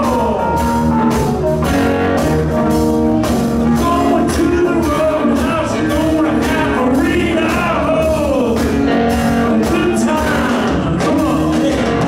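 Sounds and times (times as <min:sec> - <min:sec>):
drums: 0:00.0 - 0:12.0
electric guitar: 0:00.0 - 0:12.0.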